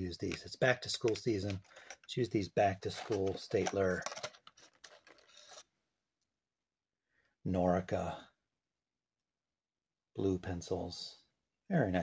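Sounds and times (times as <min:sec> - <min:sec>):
plastic packaging rustling: 0:00.3 - 0:02.2, 0:02.8 - 0:05.6.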